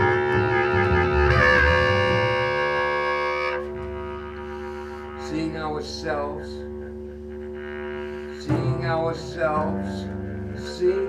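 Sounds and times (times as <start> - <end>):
clarinet holding a note: 0.0 - 11.0
double bass: 0.0 - 11.0.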